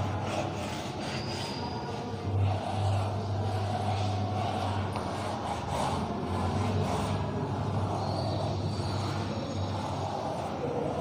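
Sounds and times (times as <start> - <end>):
chalk scratching on blackboard: 0.0 - 11.0
steady low hum: 2.0 - 11.0.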